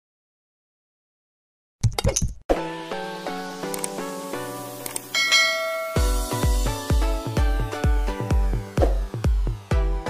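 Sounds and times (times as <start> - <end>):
electronic dance music: 3.3 - 10.0
bell-like notification chime: 5.1 - 6.6.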